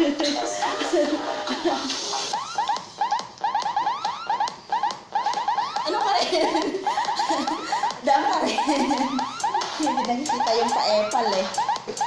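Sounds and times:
electronic chirping: 0.0s - 12.0s.

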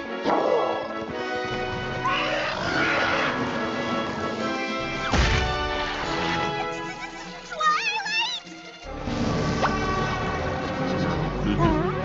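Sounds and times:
cartoon background music: 0.0s - 12.0s
loud crash: 5.1s - 6.2s.

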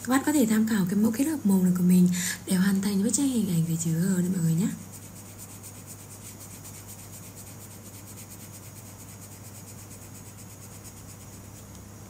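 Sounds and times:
pencil scratching on paper: 3.8s - 11.7s.

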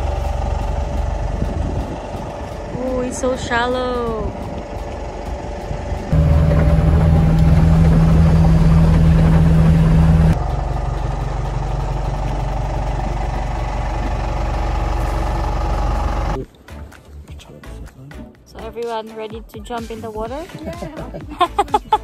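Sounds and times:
boat engine drone: 0.0s - 16.4s
wind: 0.0s - 22.0s.

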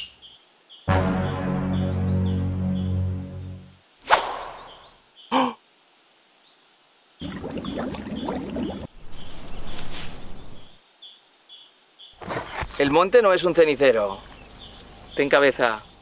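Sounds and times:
birds chirping: 0.0s - 16.0s
water pouring onto ground: 7.2s - 8.9s.

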